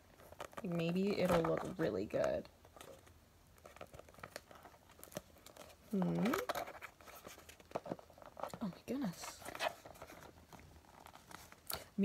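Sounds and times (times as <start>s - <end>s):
cardboard box crinkling: 0.0s - 11.7s.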